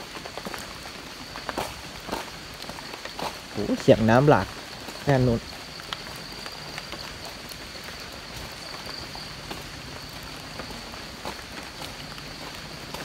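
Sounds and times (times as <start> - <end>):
footsteps on wet leaves: 0.0 - 13.0.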